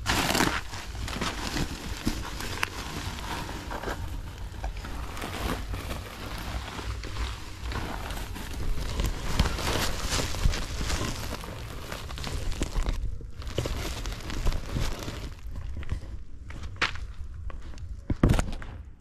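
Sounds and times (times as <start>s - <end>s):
sacks rustling and crinkling: 0.0s - 18.4s
light footsteps on ground: 7.0s - 18.8s.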